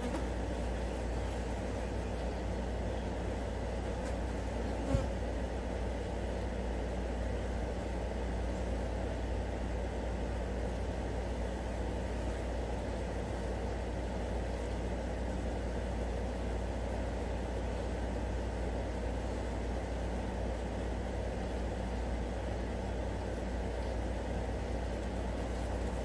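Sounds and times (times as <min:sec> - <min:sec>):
flies buzzing: 0:00.0 - 0:05.9.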